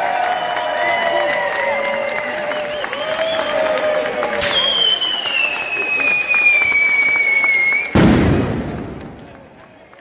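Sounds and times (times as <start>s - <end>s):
firecrackers crackling: 4.2s - 10.0s
firework whistle sliding down: 4.3s - 8.0s
loud echoing bang: 8.0s - 9.4s.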